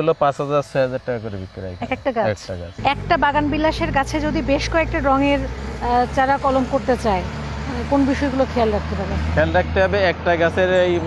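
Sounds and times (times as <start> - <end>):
people conversing: 0.0 - 11.0
low rumble: 2.8 - 6.2.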